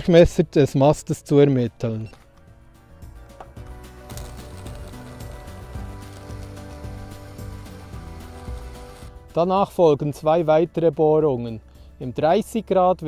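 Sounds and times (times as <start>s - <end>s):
background music: 0.0s - 13.0s
drill boring through wood: 4.1s - 9.2s.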